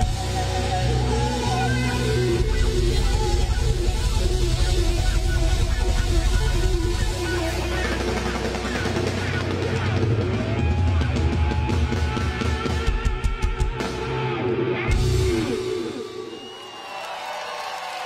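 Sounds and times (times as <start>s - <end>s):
electric guitar: 0.0s - 16.8s
live rock band: 0.0s - 17.0s.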